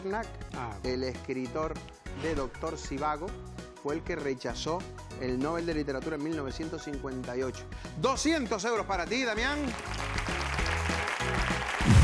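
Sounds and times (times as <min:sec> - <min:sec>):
applause: 0:09.4 - 0:12.0
game show music sting: 0:11.6 - 0:12.0.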